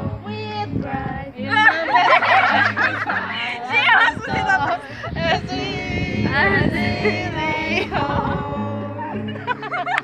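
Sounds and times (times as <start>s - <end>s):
children singing: 0.0s - 10.0s
strummed acoustic guitar: 1.4s - 10.0s.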